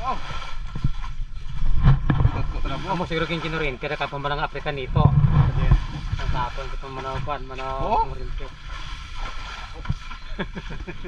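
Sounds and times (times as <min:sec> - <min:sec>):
low rumble on microphone: 0:00.0 - 0:11.0
men talking casually: 0:02.3 - 0:08.6.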